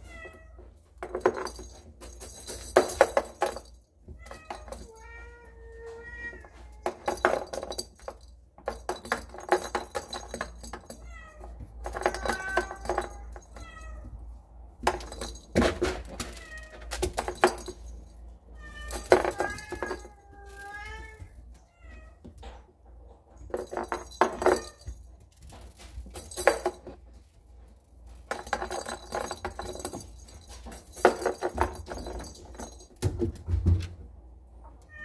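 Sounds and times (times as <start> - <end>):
plastic toy ball clattering: 6.8 - 11.0, 11.8 - 13.6, 14.8 - 17.9, 18.9 - 20.7, 28.3 - 33.2.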